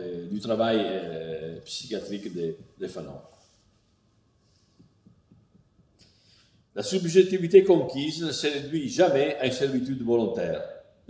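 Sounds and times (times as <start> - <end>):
faint low taps: 4.7 - 6.2.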